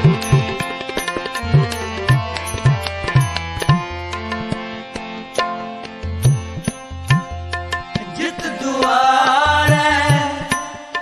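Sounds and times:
devotional music accompaniment: 0.0 - 11.0
tabla strokes: 0.0 - 11.0.

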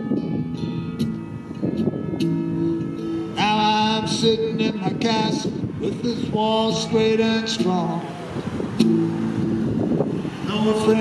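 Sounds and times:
guitar chord strummed: 0.0 - 9.8
minivan passing: 0.3 - 11.0.

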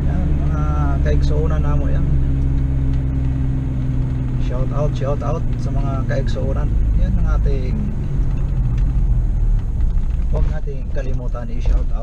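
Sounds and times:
car engine drone: 0.0 - 12.0
road noise inside car: 0.0 - 12.0.

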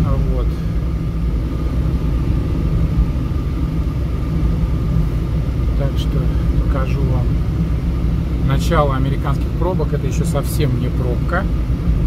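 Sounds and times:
car road noise rumble: 0.0 - 12.0
faint high hum: 0.0 - 12.0.

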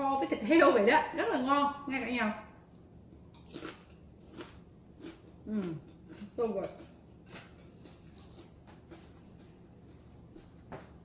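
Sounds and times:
person chewing crunchy food: 3.3 - 11.0.

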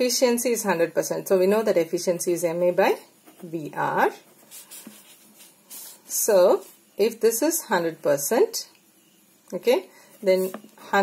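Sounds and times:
pen scratching on paper: 4.3 - 6.0.

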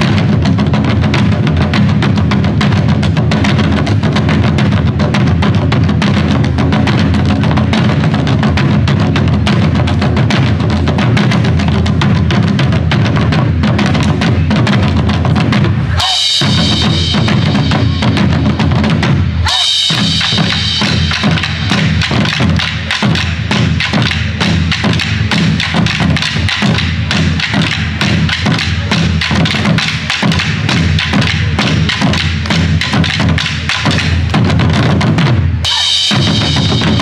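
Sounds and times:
barrel drums struck with sticks: 0.0 - 37.0.

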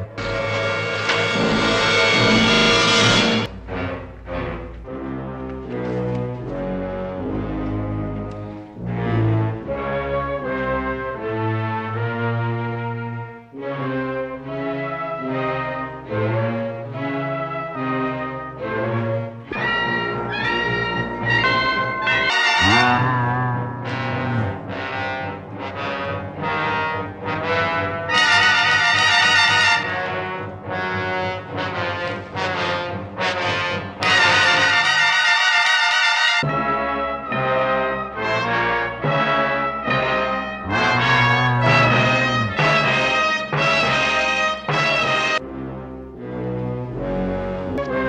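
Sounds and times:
dramatic orchestral music with brass: 0.0 - 23.0, 23.9 - 48.0.

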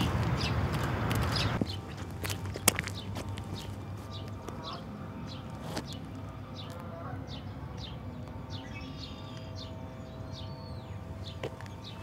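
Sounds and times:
footsteps on paved path: 0.0 - 12.0.

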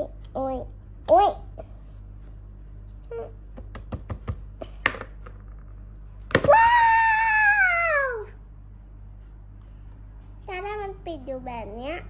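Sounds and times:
child crying high-pitched: 6.4 - 8.4.

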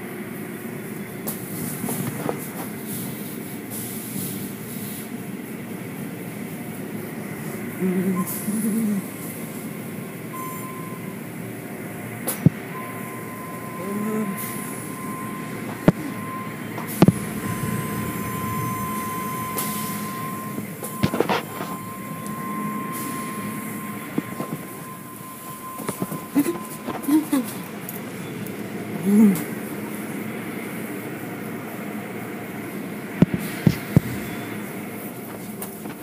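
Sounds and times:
car wash machinery rushing: 0.0 - 36.0
thin steady whine: 0.0 - 36.0.

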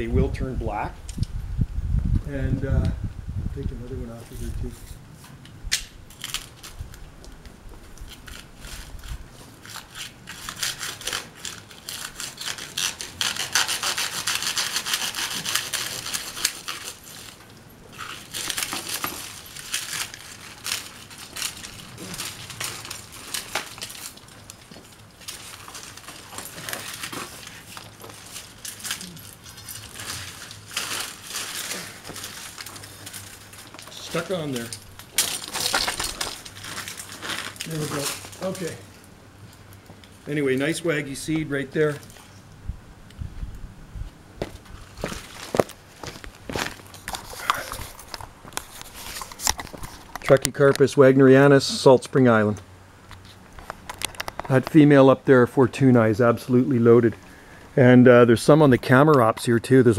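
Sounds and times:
pole saw sawing: 8.3 - 19.2.

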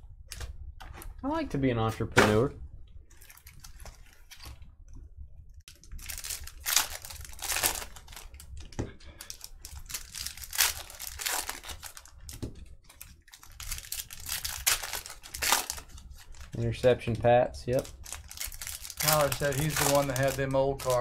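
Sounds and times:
foil wrappers crinkling and tearing: 3.1 - 4.6, 5.7 - 16.7, 17.7 - 21.0.

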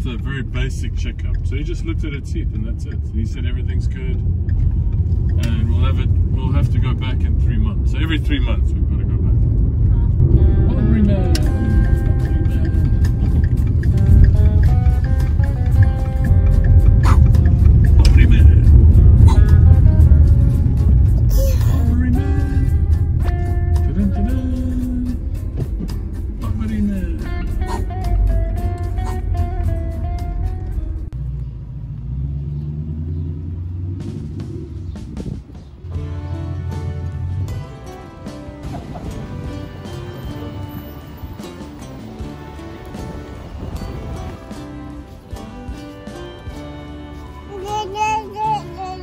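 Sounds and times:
car cabin road rumble: 0.0 - 45.6
background music: 9.9 - 31.2, 34.5 - 49.0.

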